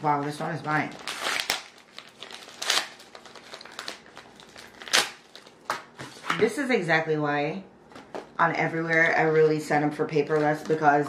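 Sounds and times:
paper envelopes rustling: 0.0 - 6.4.

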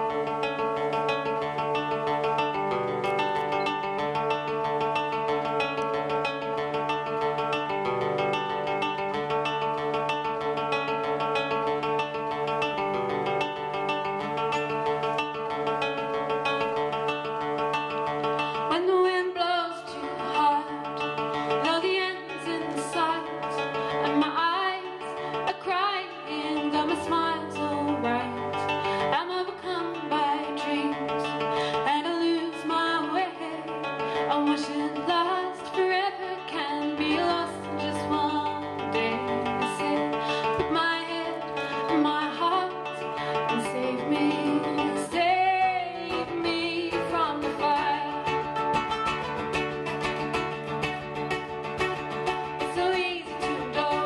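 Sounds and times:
acoustic guitar: 0.0 - 54.0
mandolin: 0.0 - 54.0
woman singing: 18.3 - 49.5, 50.8 - 54.0.

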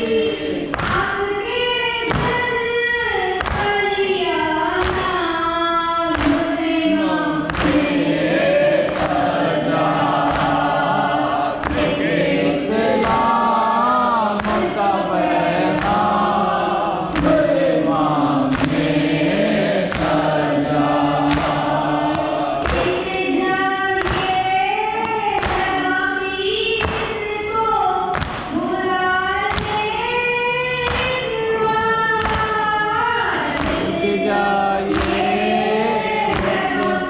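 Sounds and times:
hands slapping chests: 0.0 - 1.2, 2.0 - 2.6, 3.3 - 3.8, 4.7 - 5.2, 6.0 - 6.6, 7.3 - 25.9, 26.7 - 28.6, 29.4 - 30.0, 30.8 - 37.0
group chanting: 0.0 - 37.0.

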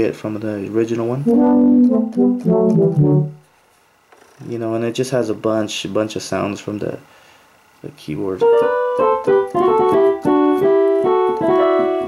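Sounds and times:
synth brass notes: 1.2 - 3.5.

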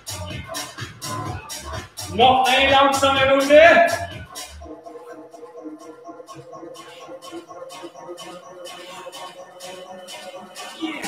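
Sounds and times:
workout music with steady beat: 0.0 - 11.0.

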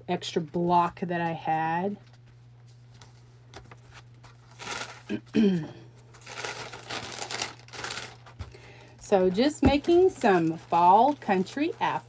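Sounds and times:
low steady hum: 0.0 - 12.0
paper rustling and crinkling: 2.0 - 5.1, 6.0 - 8.6, 9.7 - 12.0
person humming hmm: 5.1 - 5.9.

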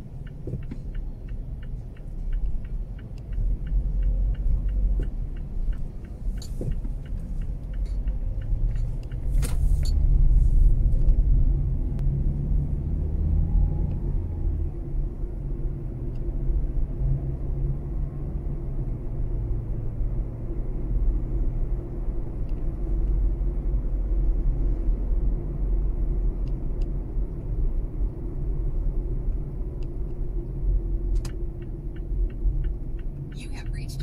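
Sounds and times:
car engine and road rumble: 0.0 - 34.0.

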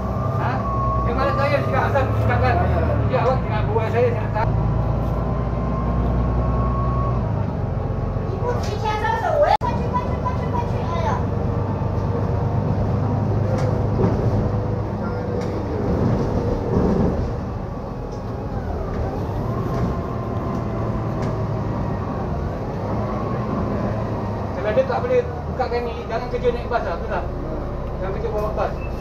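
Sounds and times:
bus engine drone: 0.0 - 29.0.

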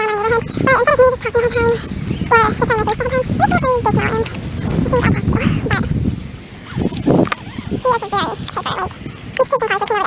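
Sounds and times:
high-pitched bending voice: 0.0 - 5.9, 6.5 - 10.0
low rumbling microphone handling: 0.0 - 9.9.

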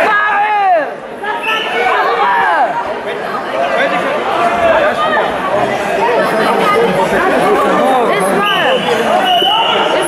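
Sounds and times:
crowd chatter in a hall: 0.0 - 10.0.

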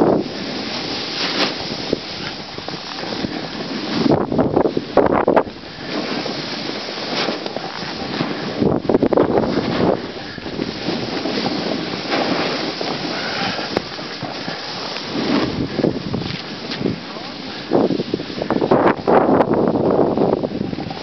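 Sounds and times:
snowboard hissing through snow: 0.0 - 21.0
wind buffeting microphone: 0.0 - 21.0.

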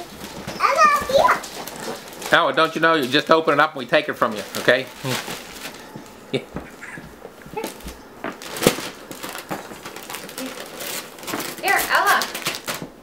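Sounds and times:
wrapping paper crinkling: 0.0 - 13.0
child babbling: 0.6 - 1.4.

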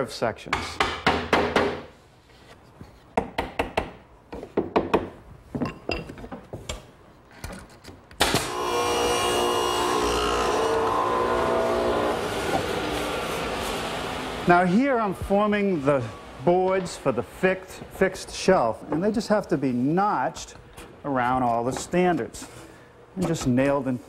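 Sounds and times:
hammer tapping a nail: 3.2 - 4.0.

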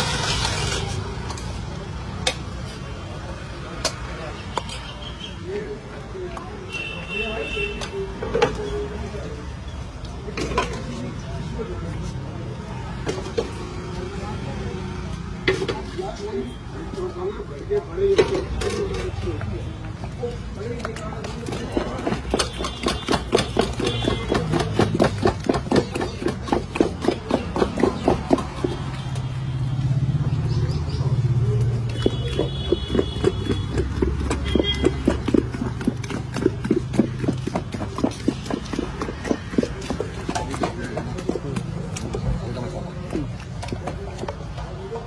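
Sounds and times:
low rumble of street traffic: 0.0 - 45.0.

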